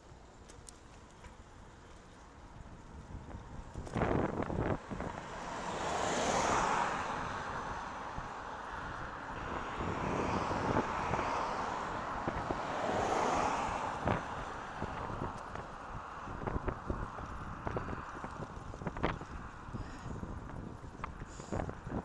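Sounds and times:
vehicles passing: 0.0 - 22.0
wind on microphone: 2.9 - 22.0.

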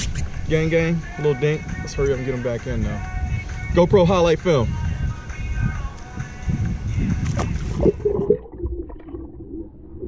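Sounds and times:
muffled underwater hum and gurgling: 7.3 - 10.0.

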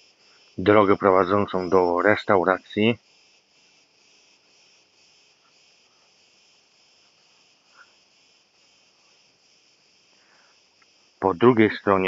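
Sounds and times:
faint insect chirping: 0.0 - 12.0.

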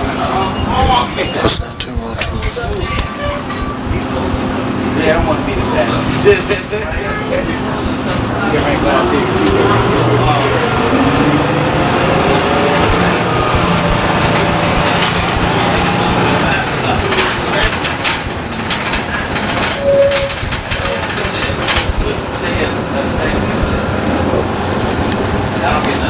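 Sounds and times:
bus knocks and rattles: 0.0 - 26.0
diesel bus engine running: 0.0 - 26.0.

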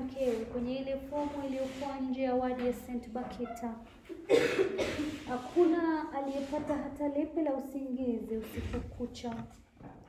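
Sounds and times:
woman speaking: 0.0 - 3.9, 5.2 - 9.6
woman coughing harshly: 4.2 - 5.3.

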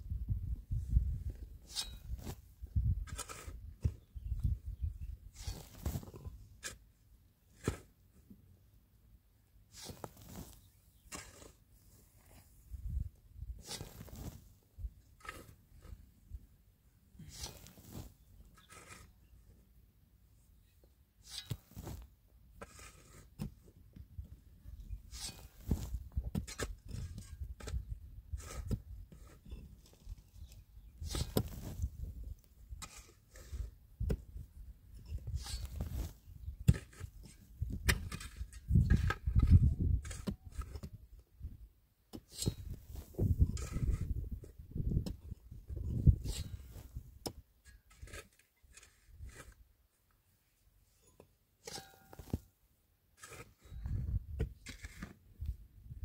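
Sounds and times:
loose dirt scraping and falling: 0.3 - 8.4, 9.5 - 19.8, 20.6 - 56.0
pickaxes striking stony earth: 1.0 - 4.1, 5.4 - 6.8, 7.5 - 8.0, 9.7 - 11.6, 13.6 - 16.0, 17.2 - 19.1, 21.2 - 23.7, 25.1 - 41.0, 42.1 - 49.6, 51.0 - 52.5, 53.2 - 55.2.

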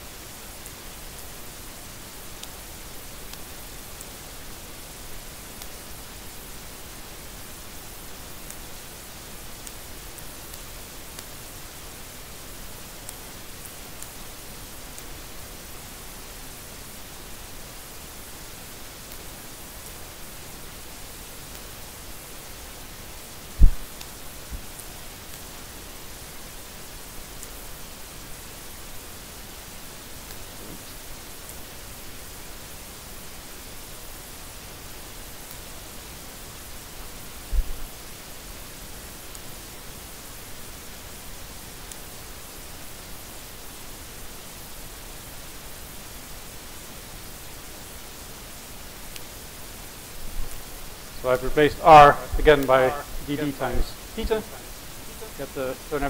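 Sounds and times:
steady background hiss: 0.0 - 56.0
sharp low thump: 23.6 - 23.8.

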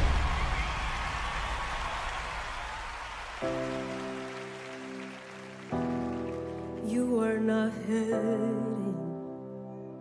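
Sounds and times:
audience applause: 0.0 - 6.9.

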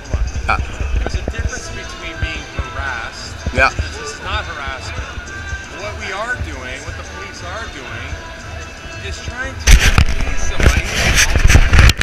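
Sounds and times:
hand rubbing against camera: 9.7 - 12.0.

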